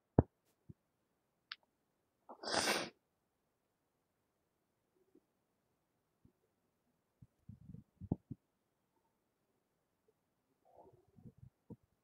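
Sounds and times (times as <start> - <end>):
person breathing out sharply: 2.4 - 2.9.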